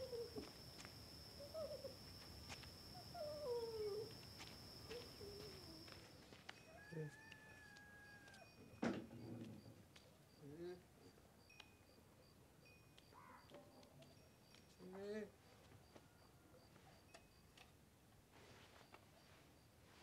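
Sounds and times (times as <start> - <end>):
animal cries gliding downward: 6.7 - 8.6.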